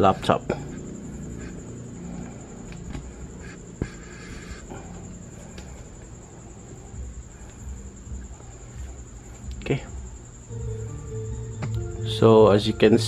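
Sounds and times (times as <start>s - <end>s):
faint high-pitched whine: 0.0s - 13.0s
low hum and hiss: 0.0s - 13.0s.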